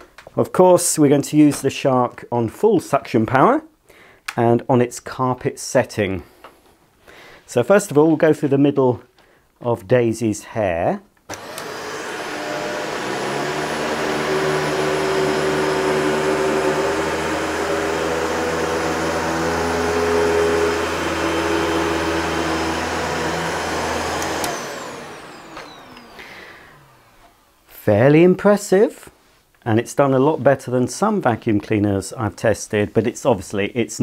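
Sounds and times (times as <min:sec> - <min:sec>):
vacuum cleaner running on carpet: 0:11.3 - 0:27.5.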